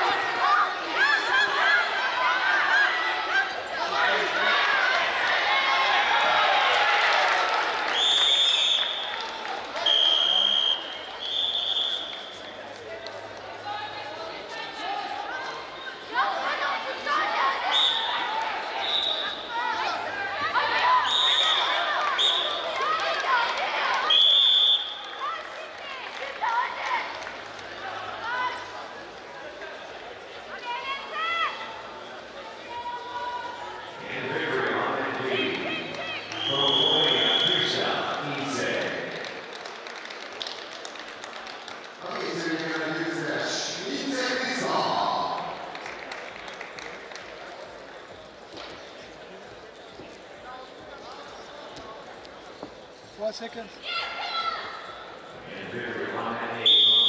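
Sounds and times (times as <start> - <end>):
crowd and coaches shouting: 0.0 - 12.1, 32.5 - 39.2
referee whistle blasts: 9.8 - 12.3, 21.0 - 22.6, 24.1 - 25.0, 36.3 - 37.7, 56.6 - 57.0.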